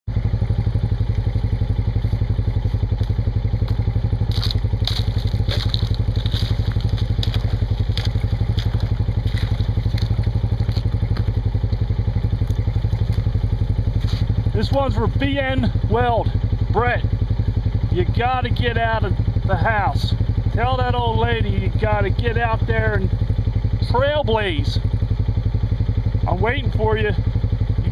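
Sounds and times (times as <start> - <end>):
engine idling: 0.0 - 27.9
boots splashing through mud: 1.1 - 14.9
ice crunching underfoot: 1.2 - 11.8, 12.4 - 14.4.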